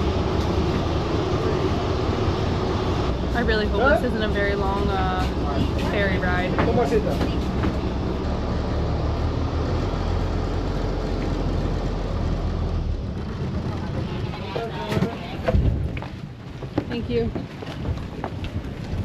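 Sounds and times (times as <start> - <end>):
ferry engine droning: 0.0 - 15.9.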